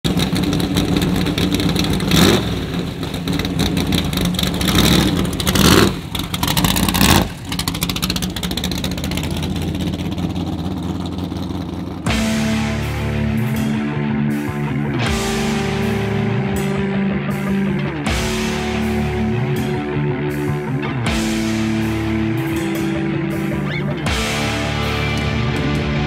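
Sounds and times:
loud engine with throttle blips: 0.0s - 26.0s.

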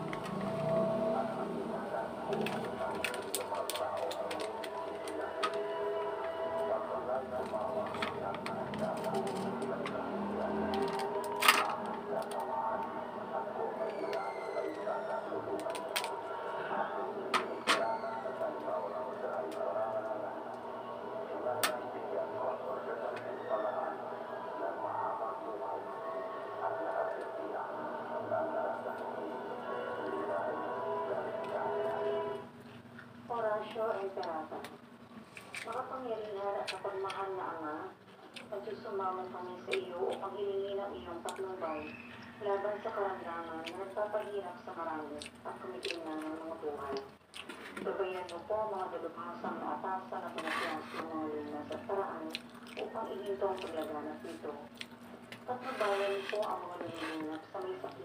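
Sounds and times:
music with voices: 0.0s - 32.5s.

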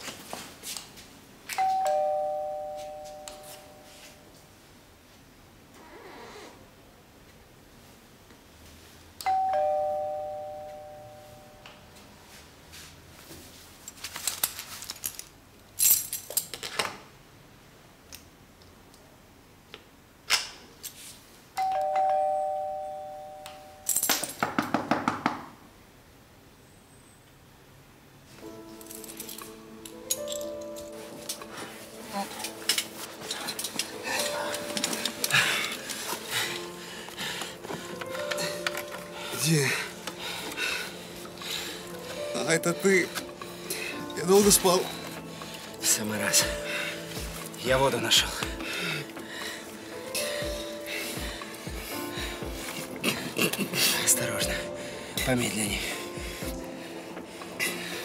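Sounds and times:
two-note doorbell chime: 1.5s - 4.2s, 9.2s - 11.9s, 21.6s - 23.9s
soft background music: 1.5s - 4.5s, 9.2s - 12.8s, 21.6s - 24.1s, 28.2s - 58.0s.

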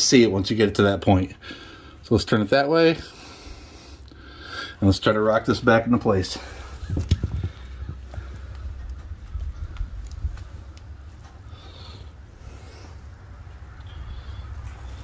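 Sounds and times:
low steady rumble: 6.4s - 15.0s.

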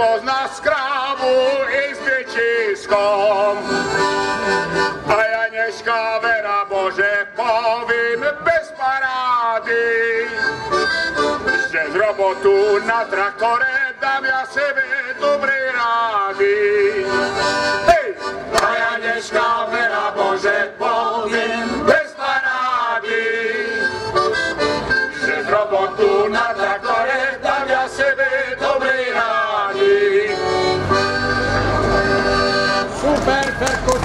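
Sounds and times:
accordion playing folk tune: 0.0s - 34.0s.

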